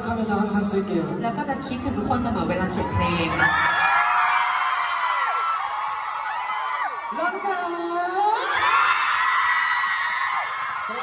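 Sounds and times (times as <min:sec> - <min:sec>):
crowd screaming and cheering: 0:02.5 - 0:11.0.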